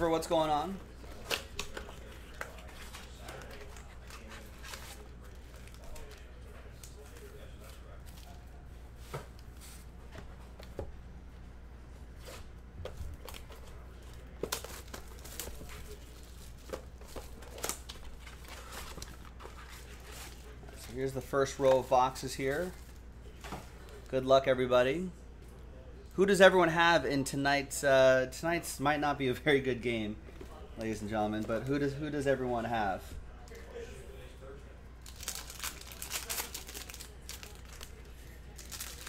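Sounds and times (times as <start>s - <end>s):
plastic wrap and foil crinkling: 13.2s - 24.1s, 35.0s - 39.0s.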